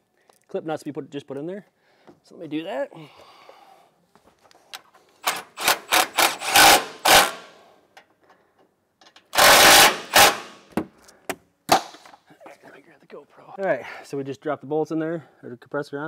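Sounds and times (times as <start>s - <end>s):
impact driver driving bolts: 5.2s - 7.5s, 9.2s - 10.6s.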